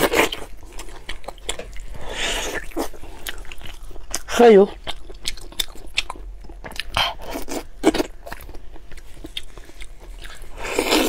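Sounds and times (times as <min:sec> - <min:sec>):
person chewing meat: 0:00.0 - 0:11.0.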